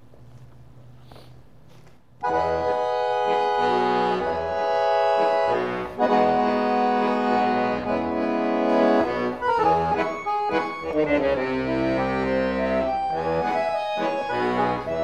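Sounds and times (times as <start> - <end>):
piano accordion playing: 2.2 - 15.0.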